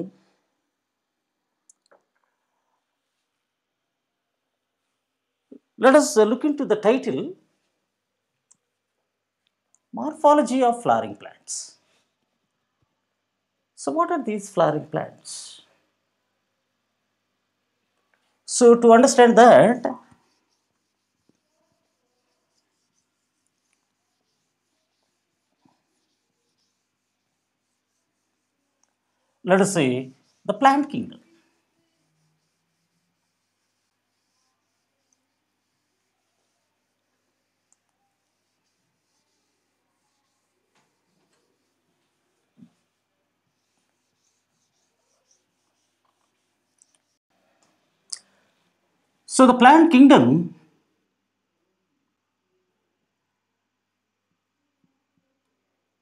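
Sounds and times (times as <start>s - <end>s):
duster rubbing whiteboard: 18.7s - 28.8s, 29.5s - 47.2s.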